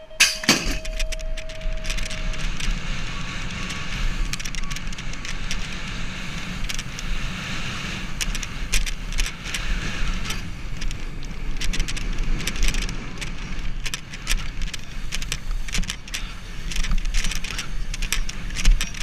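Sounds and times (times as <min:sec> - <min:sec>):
bike rattling clicks: 0:00.0 - 0:19.0
rumble of wind and tyres: 0:00.0 - 0:19.0.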